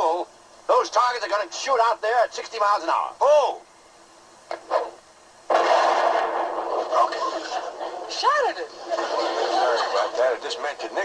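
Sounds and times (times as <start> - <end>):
rifle shot: 5.5 - 7.1.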